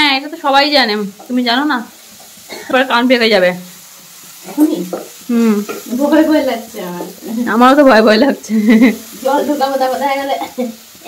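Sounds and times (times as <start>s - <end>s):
woman talking: 4.5s - 10.7s.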